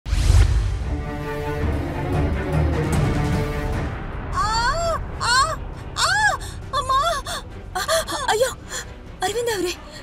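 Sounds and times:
woman crying out: 4.4 - 8.8.

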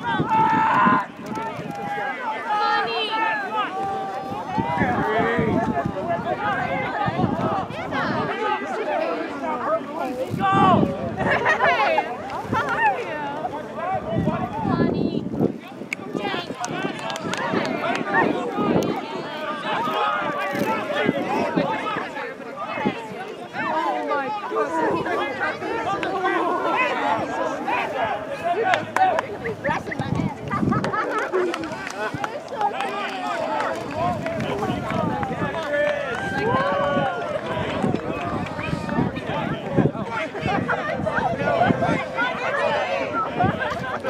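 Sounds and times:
voices shouting over one another: 0.0 - 44.0.

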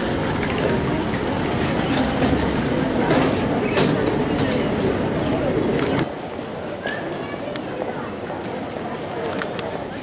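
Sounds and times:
baggage carousel rumbling: 0.0 - 6.1
crowd chatter: 0.0 - 10.0.

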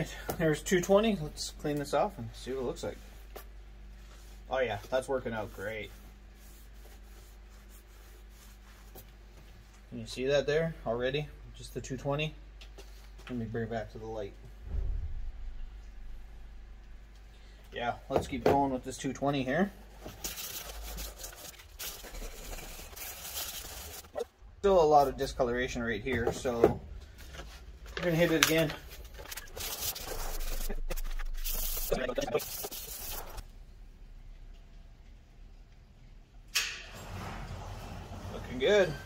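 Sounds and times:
sandpaper rasping on metal: 20.3 - 24.2, 29.2 - 33.4.

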